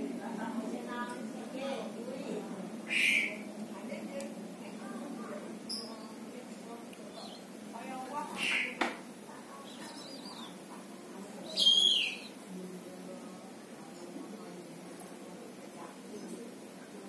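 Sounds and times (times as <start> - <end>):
bird giving sharp calls: 2.8 - 3.5, 8.2 - 8.8, 11.4 - 12.4.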